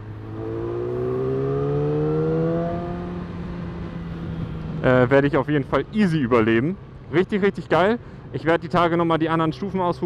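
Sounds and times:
motorcycle engine: 0:00.0 - 0:04.4
road and wind noise: 0:00.0 - 0:10.0.

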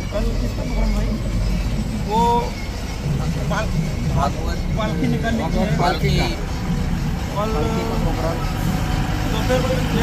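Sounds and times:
lorry engines: 0:00.0 - 0:10.0
men talking: 0:00.0 - 0:10.0
road traffic rumble: 0:00.0 - 0:10.0.

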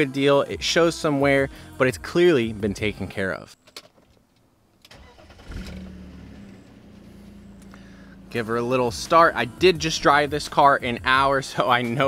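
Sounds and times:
car engine starter cranking: 0:04.8 - 0:08.5
car engine idling: 0:04.9 - 0:10.4.

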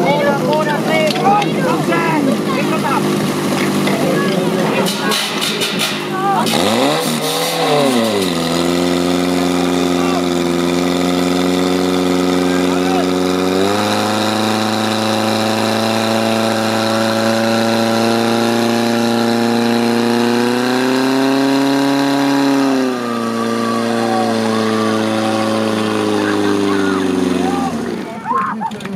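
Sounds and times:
fire pump engine revving: 0:00.0 - 0:28.9.

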